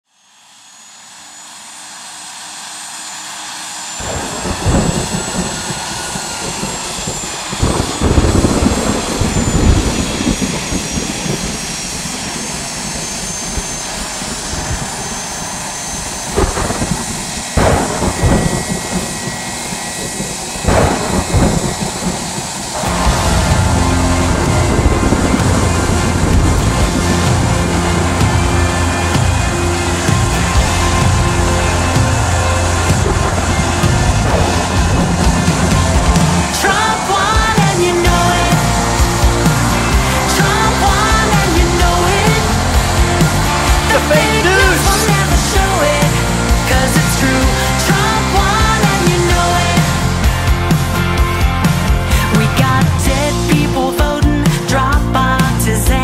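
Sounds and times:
jet engine whine: 0.0s - 56.0s
thunder rumbling and clapping: 20.7s - 22.2s, 22.8s - 45.8s
music with bass notes: 22.8s - 56.0s.

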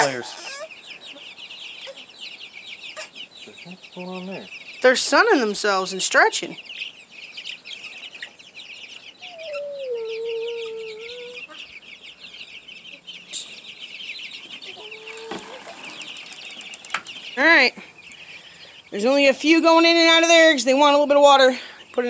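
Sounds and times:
chicks peeping: 0.0s - 22.0s.

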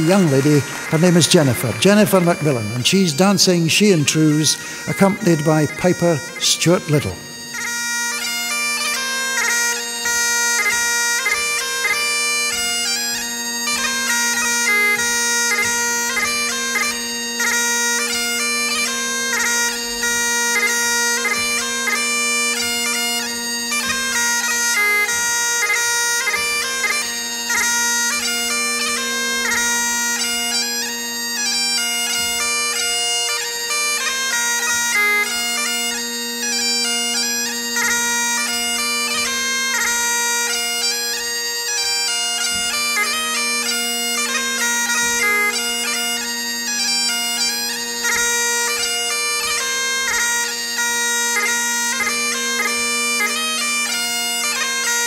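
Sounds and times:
bagpipe drone and melody: 0.0s - 55.0s.

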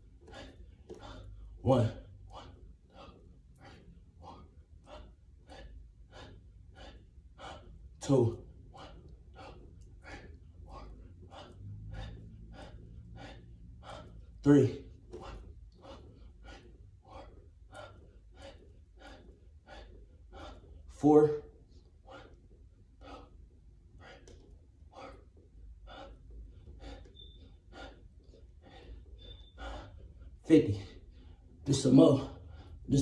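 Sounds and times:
man breathing hard and fast: 0.0s - 33.0s.

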